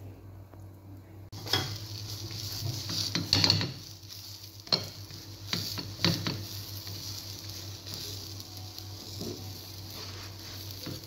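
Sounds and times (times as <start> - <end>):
pancake sizzling in a frying pan: 1.3 - 11.0
spatula scraping a pan: 1.4 - 8.2, 9.0 - 11.0.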